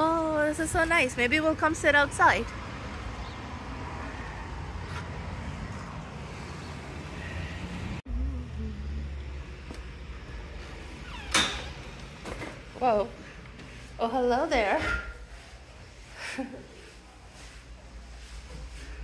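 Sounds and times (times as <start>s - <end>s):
low outdoor hum: 0.0s - 19.0s
glass door pulled open: 10.9s - 12.6s.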